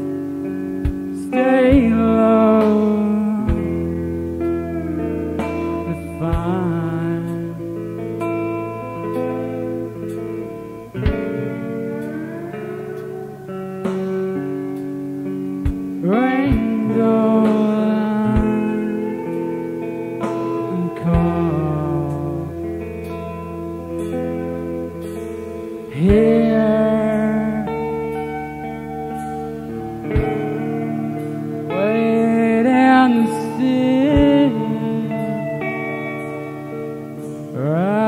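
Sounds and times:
ringing guitar chords: 0.0s - 38.0s
slow live band playing: 0.0s - 38.0s.

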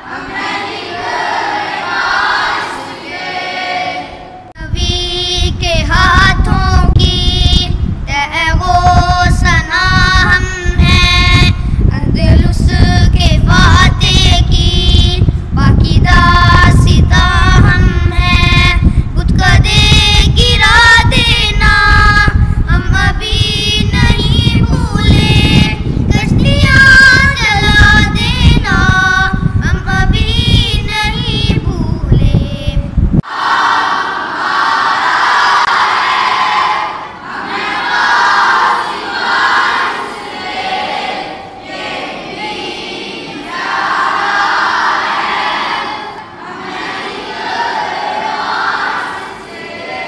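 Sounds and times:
boys singing in echoing hall: 0.0s - 50.0s
boys singing unaccompanied: 0.0s - 50.0s.

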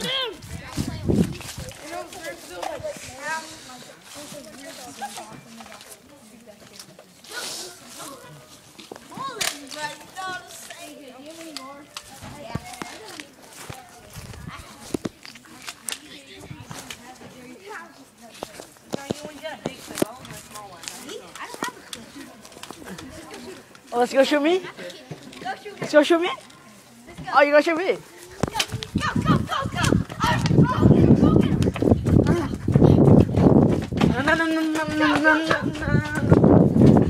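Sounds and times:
children calling out: 0.0s - 0.9s, 28.1s - 32.6s.

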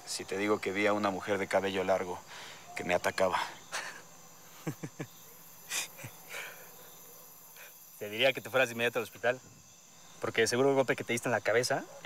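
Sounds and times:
crickets chirring: 0.0s - 12.0s
man chuckling: 3.7s - 6.5s.

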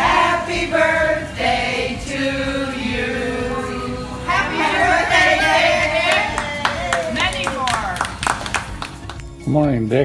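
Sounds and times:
people singing: 0.0s - 6.4s
people clapping: 5.9s - 9.4s.

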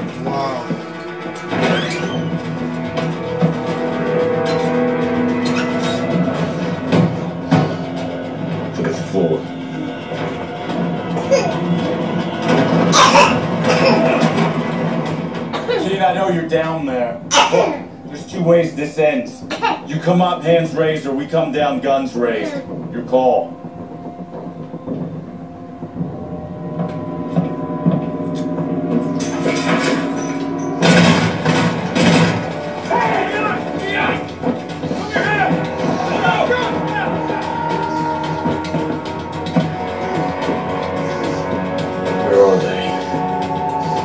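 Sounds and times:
loud noisy action sounds: 0.0s - 44.0s
tense drama score from television: 0.0s - 44.0s.

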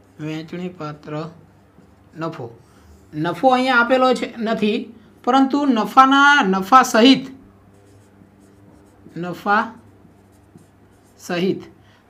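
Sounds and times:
faint low hum: 0.0s - 12.0s
marker writing on a whiteboard: 0.9s - 2.8s, 6.6s - 11.7s.

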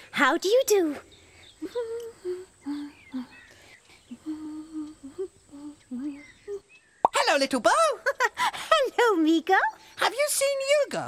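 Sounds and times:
person humming a tune: 1.6s - 3.4s, 4.1s - 6.7s.

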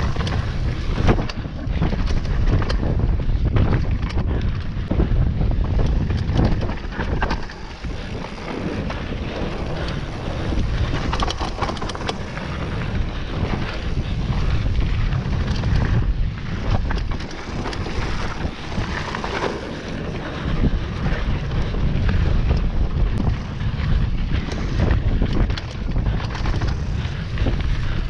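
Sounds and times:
bike rattling clicks and knocks: 0.0s - 28.0s
tyres rumbling on dirt: 0.0s - 28.0s
wind buffeting microphone: 0.0s - 28.0s.

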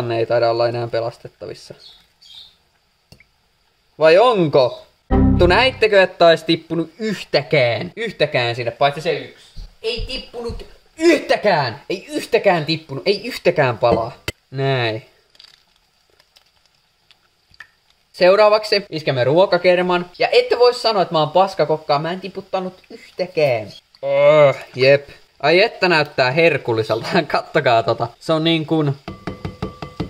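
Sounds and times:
wet squishes and drips of egg: 15.2s - 18.2s.

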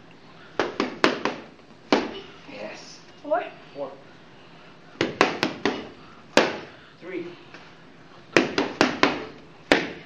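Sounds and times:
boxing gloves punching mitts: 0.6s - 2.3s, 5.0s - 6.7s, 8.3s - 10.0s.

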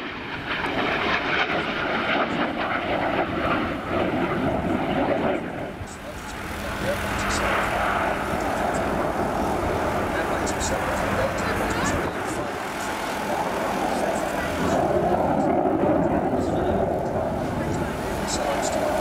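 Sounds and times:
fighter jet roar: 0.0s - 19.0s.

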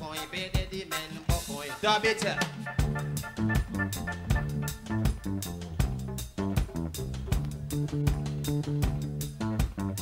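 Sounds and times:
bass line: 0.0s - 10.0s
drums: 0.0s - 10.0s
guitar: 0.0s - 10.0s.

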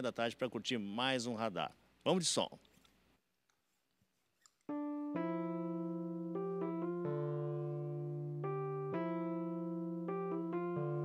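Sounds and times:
electric piano chord: 4.7s - 11.0s.

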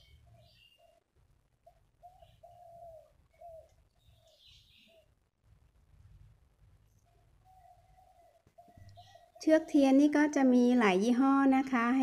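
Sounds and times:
bird chirping: 0.0s - 5.2s, 6.9s - 12.0s
dove cooing: 1.6s - 5.1s, 7.1s - 9.5s.

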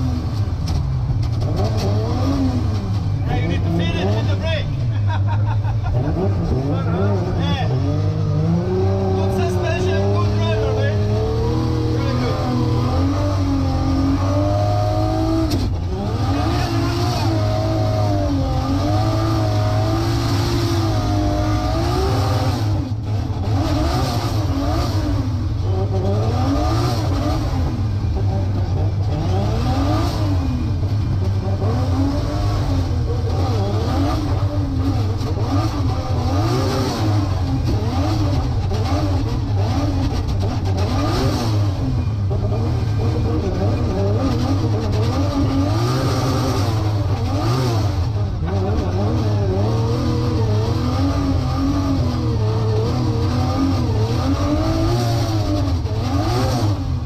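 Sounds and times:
car engine revving: 0.0s - 57.0s.

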